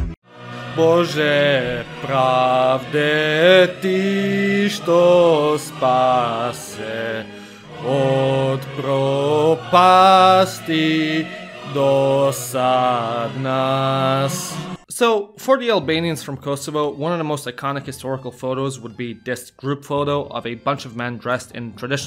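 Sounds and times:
slow chant in long held notes: 0.3 - 14.8.

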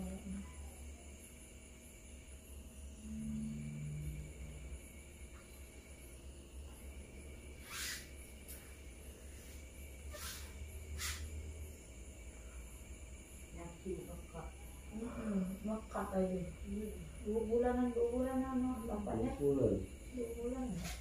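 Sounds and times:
steady low hum: 0.0 - 21.0
hands rubbing skin: 10.2 - 11.2.

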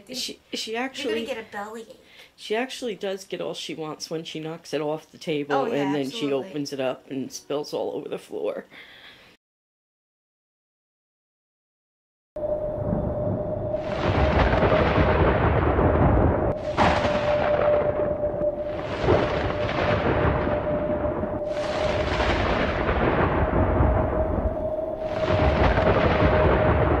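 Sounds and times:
rolling thunder: 12.4 - 27.0
steady held tone: 16.6 - 22.3.

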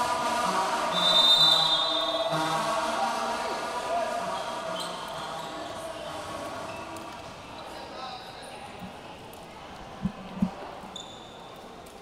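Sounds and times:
crowd murmur: 2.2 - 12.0.

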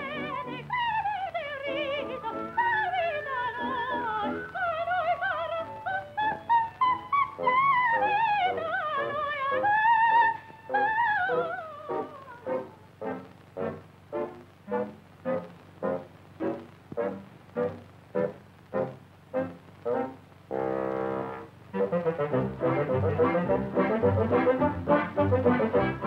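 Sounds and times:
staccato notes: 9.6 - 26.0
brass chord: 11.9 - 26.0
orchestral cartoon music: 21.8 - 26.0.

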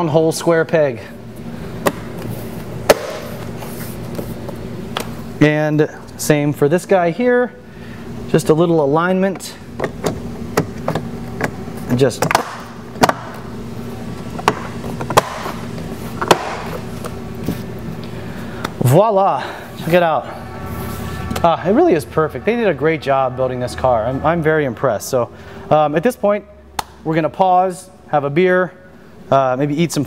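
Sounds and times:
faint steady hum: 0.0 - 30.0.

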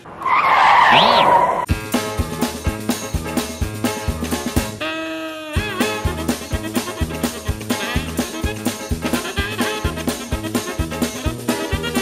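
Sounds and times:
tyre screech: 0.1 - 1.7
short rising whistle: 0.3 - 1.7
music: 1.7 - 12.0.

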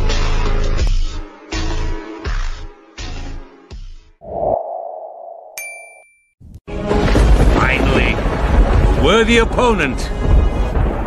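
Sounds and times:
bright ringing ding: 5.6 - 6.4.

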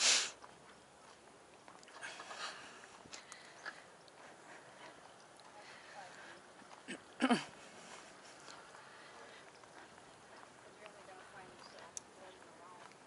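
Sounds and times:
sharp sniff: 0.0 - 0.4
rustles: 0.0 - 13.0.

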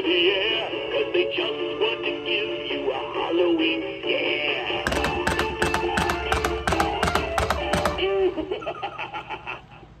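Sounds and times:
quick ticking beat: 4.9 - 8.1.

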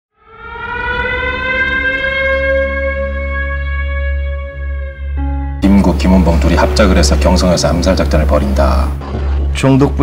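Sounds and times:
siren-like tone: 0.1 - 8.6.

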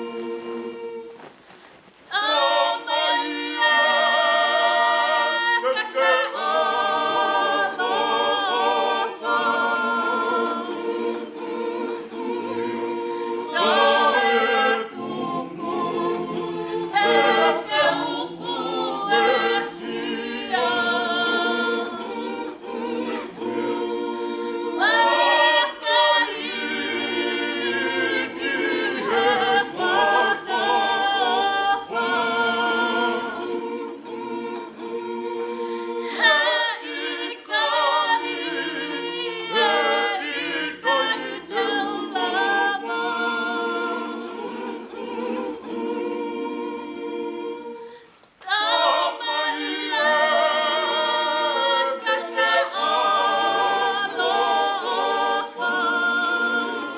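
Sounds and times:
congregation singing unaccompanied: 0.0 - 1.4, 2.0 - 56.9.

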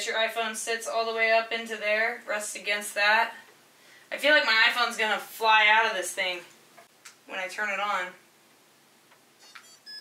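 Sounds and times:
short high electronic tones: 9.4 - 10.0
steady electronic beep: 9.4 - 10.0.

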